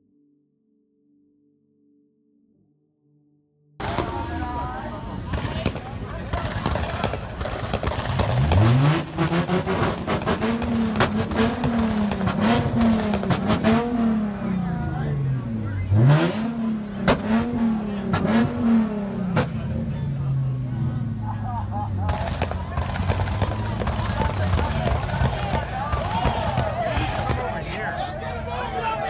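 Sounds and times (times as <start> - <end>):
car engine revving on limiter: 3.8 - 21.2, 22.0 - 27.4
crowd voices: 3.8 - 29.0
exhaust pops and bangs: 5.2 - 14.6, 16.0 - 19.9, 22.0 - 27.8.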